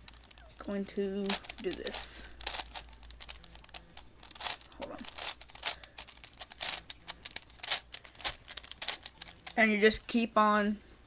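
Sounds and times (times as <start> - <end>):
fingers rustling on cube: 0.0 - 10.2
puzzle cube clicking: 1.2 - 9.6.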